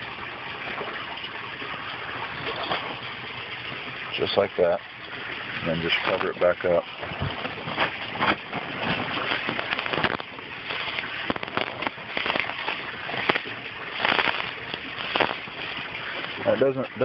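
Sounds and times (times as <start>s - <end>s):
gravel clattering and crunching: 5.7s - 17.0s.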